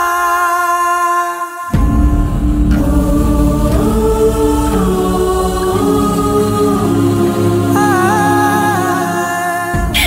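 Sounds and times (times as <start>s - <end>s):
choir-like voices: 0.0s - 10.0s
dense low bass: 1.8s - 6.8s.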